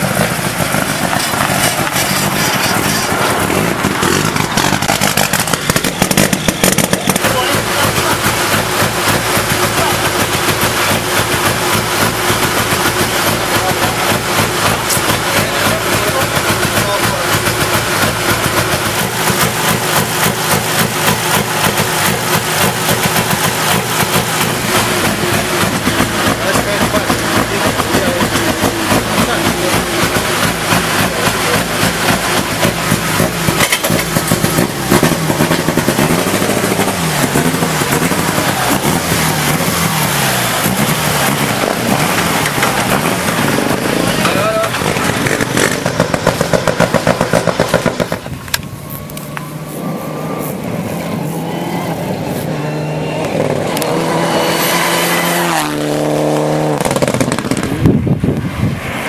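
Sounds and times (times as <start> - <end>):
exhaust pops crackling: 0.0 - 49.5, 55.4 - 58.5
car engine revving: 0.0 - 59.0.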